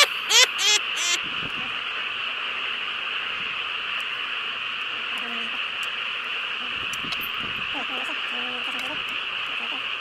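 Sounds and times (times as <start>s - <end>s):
person laughing: 0.0s - 1.2s
steady high-pitched hiss: 0.0s - 10.0s.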